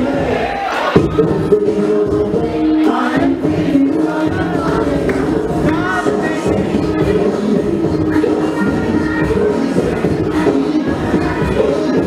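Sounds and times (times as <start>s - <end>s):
crowd voices: 0.0s - 12.0s
dance music with vocals: 0.0s - 12.0s.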